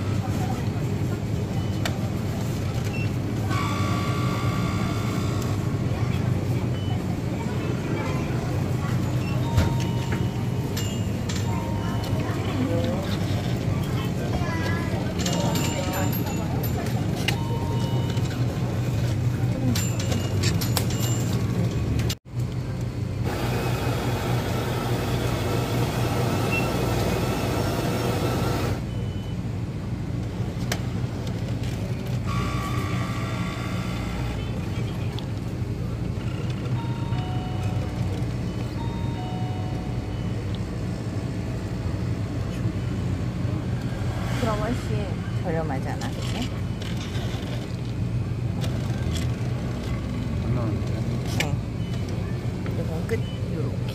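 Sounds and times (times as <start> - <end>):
coffee machine pump humming: 23.3 - 28.8.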